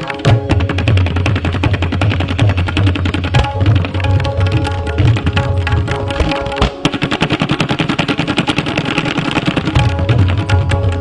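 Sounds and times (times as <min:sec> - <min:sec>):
fast tabla strokes: 0:00.0 - 0:11.0.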